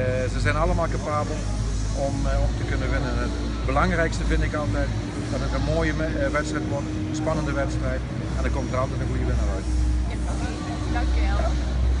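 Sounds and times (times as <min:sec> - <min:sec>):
low rumble of hall noise: 0:00.0 - 0:12.0.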